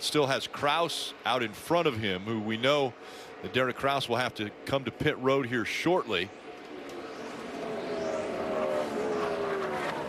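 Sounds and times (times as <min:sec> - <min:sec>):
race car engine passing by: 0:00.2 - 0:10.0.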